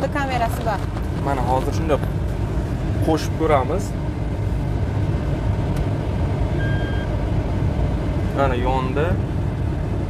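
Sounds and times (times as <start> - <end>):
car engine idling: 0.0 - 10.0
reverse warning beep: 6.6 - 7.1.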